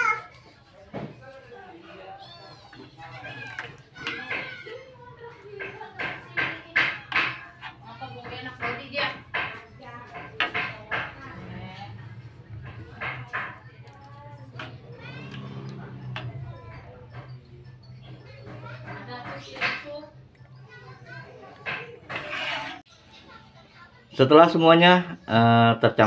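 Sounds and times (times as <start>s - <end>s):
children chattering and calling: 0.0s - 25.4s.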